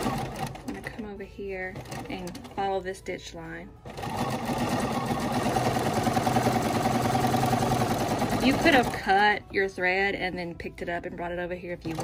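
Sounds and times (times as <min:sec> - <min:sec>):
sewing machine running fast: 0:00.0 - 0:00.8, 0:01.8 - 0:02.5, 0:03.9 - 0:09.2.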